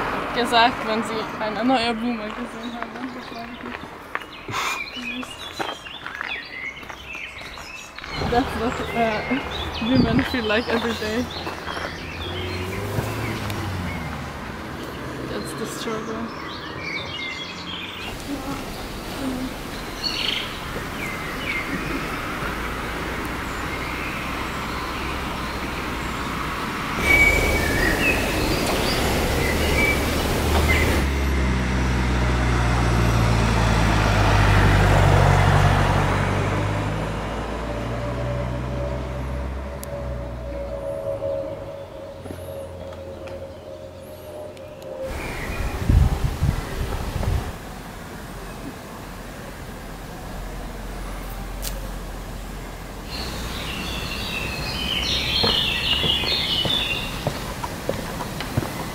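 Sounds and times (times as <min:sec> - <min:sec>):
birds chirping: 0:00.0 - 0:35.9, 0:39.8 - 0:58.9
motor vehicle passing: 0:00.0 - 0:58.9.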